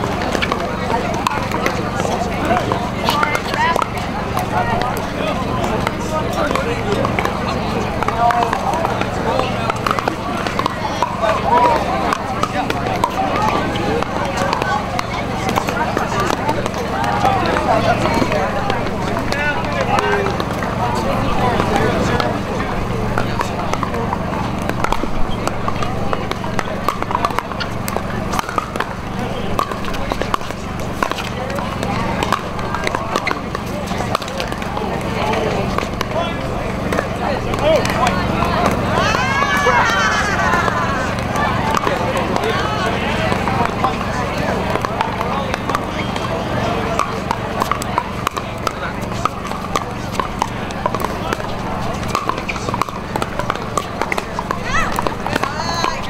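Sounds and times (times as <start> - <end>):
babble of voices: 0.0 - 56.0
paddles hitting plastic ball: 0.0 - 56.0.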